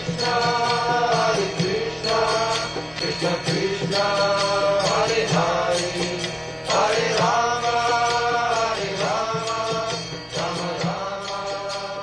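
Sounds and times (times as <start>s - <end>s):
voices singing a chant: 0.0s - 12.0s.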